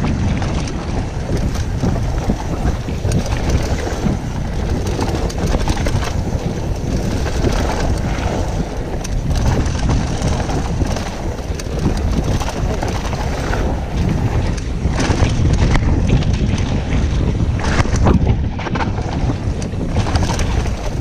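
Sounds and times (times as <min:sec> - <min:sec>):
bike knocks and rattles: 0:00.0 - 0:21.0
bike tyres rolling on gravel: 0:00.0 - 0:21.0
wind buffeting microphone: 0:00.0 - 0:21.0.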